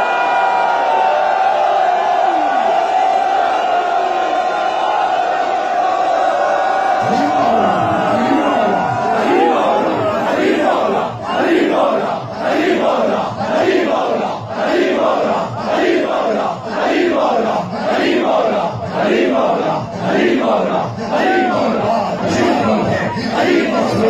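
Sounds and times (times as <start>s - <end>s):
crowd of men chanting: 2.8s - 24.0s.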